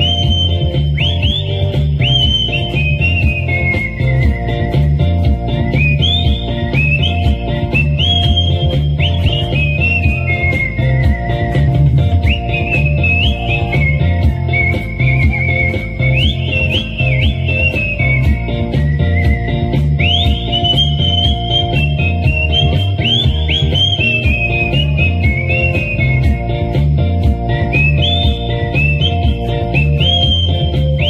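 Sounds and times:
backing track with bass and drums: 0.0 - 31.0
person whistling a melody: 0.0 - 31.0.

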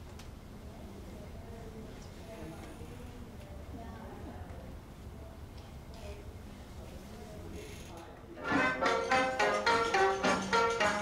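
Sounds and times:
faint room noise: 0.0 - 11.0.

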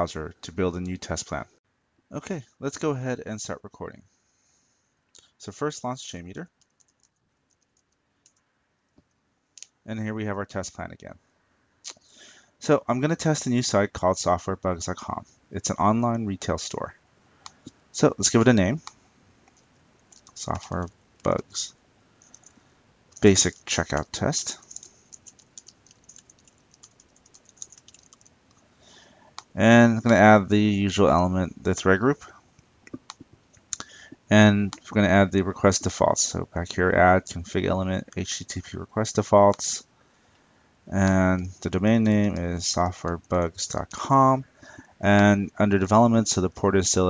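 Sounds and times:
computer keyboard keystrokes: 6.6 - 8.4, 19.5 - 21.4, 22.2 - 28.6.

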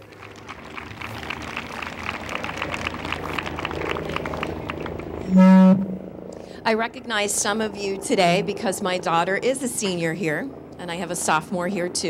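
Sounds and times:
audience applause: 0.0 - 5.2
loud steady tone: 5.2 - 10.1.

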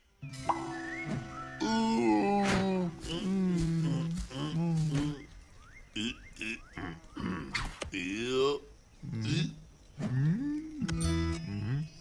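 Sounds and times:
rising whistle-like glides: 0.5 - 2.2.

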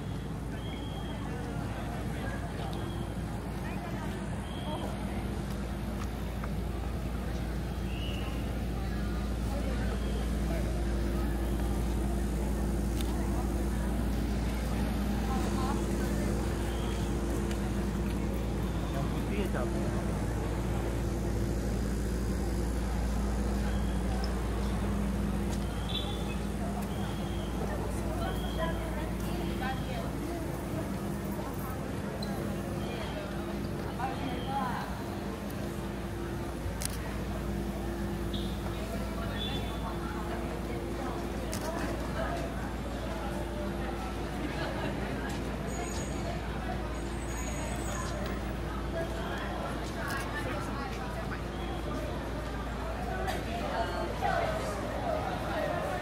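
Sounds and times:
low mechanical hum: 0.0 - 56.0
constant rumble: 1.4 - 56.0.

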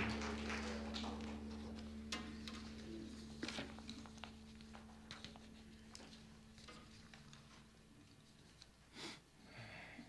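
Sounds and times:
sound system hum: 0.0 - 8.1.

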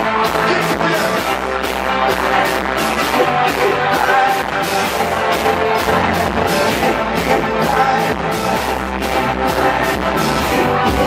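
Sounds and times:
drum kit beat: 0.0 - 11.0
guitar: 0.0 - 11.0
live rock band playing: 0.0 - 11.0.

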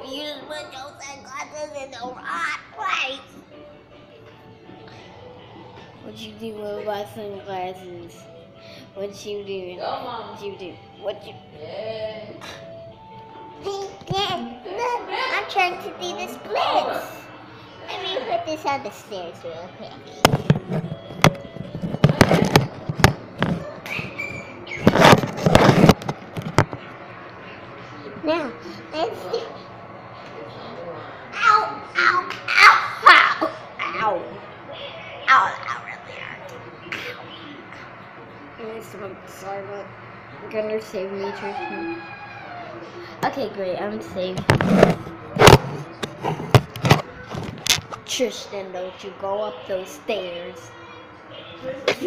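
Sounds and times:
knocks and bumps on microphone: 20.2 - 23.8
rubbing and scraping: 24.8 - 26.2.

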